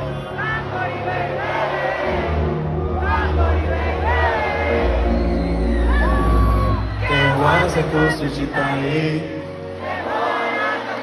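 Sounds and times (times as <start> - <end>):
crowd singing along: 0.0 - 11.0
live pop music: 0.0 - 11.0.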